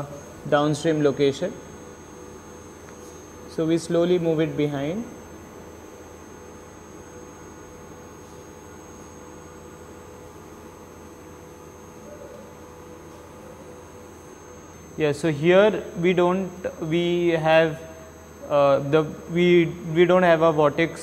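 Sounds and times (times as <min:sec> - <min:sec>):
background hum and hiss: 0:00.0 - 0:21.0.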